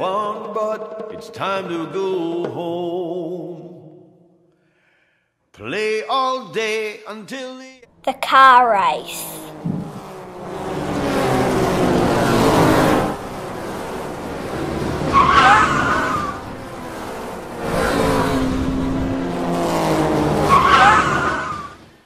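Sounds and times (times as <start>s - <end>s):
race car engines passing: 9.5s - 22.0s
tyre squeal: 15.1s - 16.4s, 20.5s - 21.8s.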